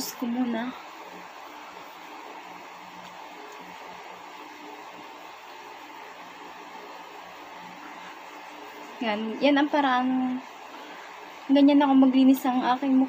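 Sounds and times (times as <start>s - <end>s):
electric fan whirring: 0.0s - 13.0s.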